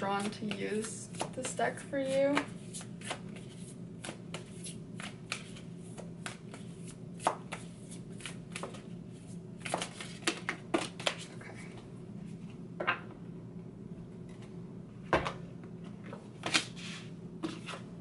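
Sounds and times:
cards being shuffled: 2.0s - 8.9s, 9.6s - 11.4s.

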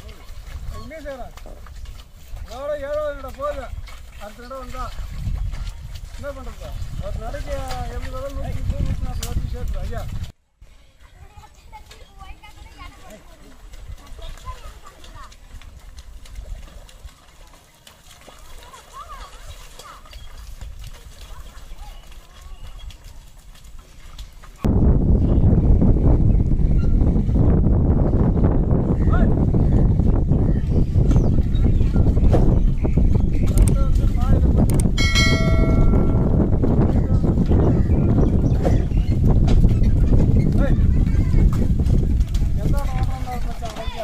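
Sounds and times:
hooves and cart clattering: 0.0s - 44.0s
metal bell ringing: 35.0s - 36.3s.

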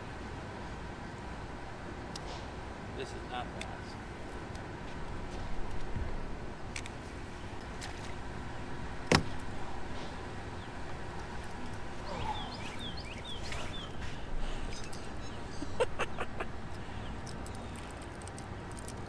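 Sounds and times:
wind: 0.0s - 19.0s
water noise: 5.5s - 19.0s.

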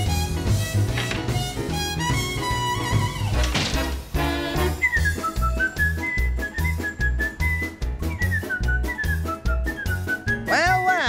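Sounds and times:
swing-style background music: 0.0s - 11.0s.

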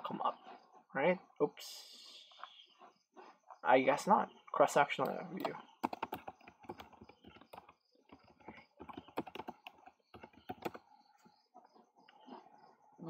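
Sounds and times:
keyboard typing: 5.0s - 10.9s.

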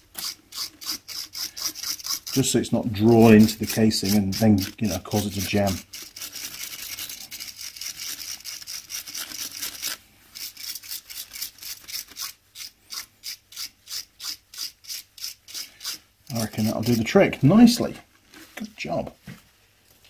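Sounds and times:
wire brush scrubbing metal: 0.0s - 17.4s.

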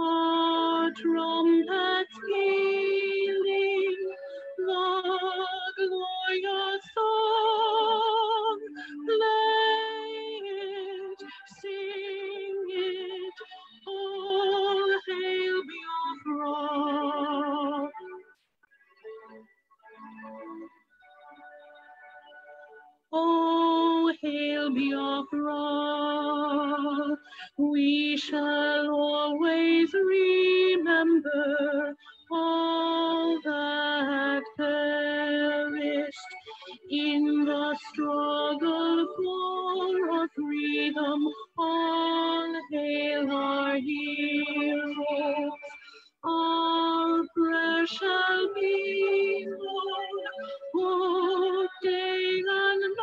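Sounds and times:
slow stately anthem melody: 7.3s - 23.4s.

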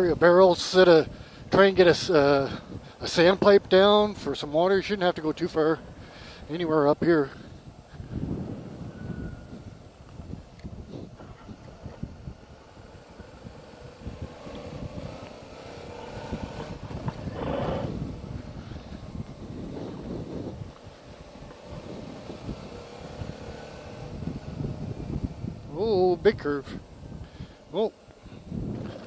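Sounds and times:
motorcycle engine cruising: 0.0s - 29.0s
wind buffeting microphone: 0.0s - 29.0s.

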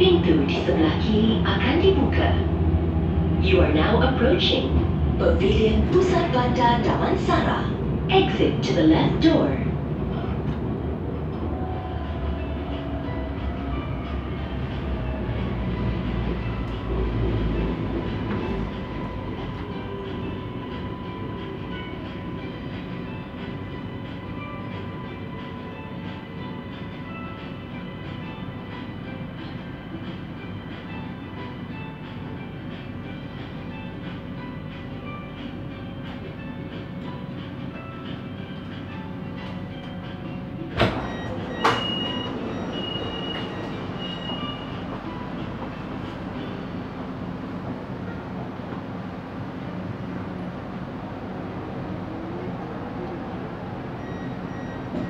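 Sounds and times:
metro train rumbling on rails: 0.0s - 55.0s.

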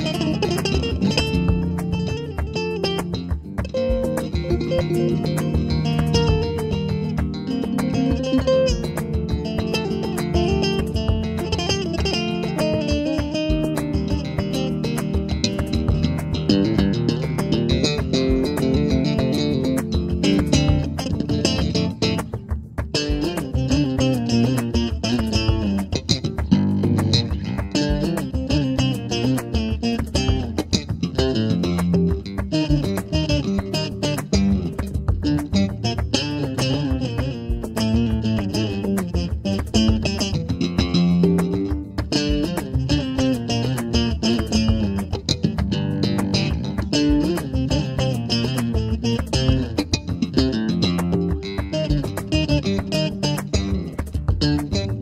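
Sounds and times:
electric bass flamenco runs: 0.0s - 55.0s.

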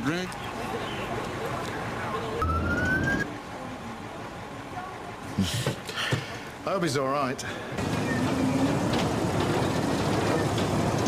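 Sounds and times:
police siren rising tone: 1.9s - 3.3s.

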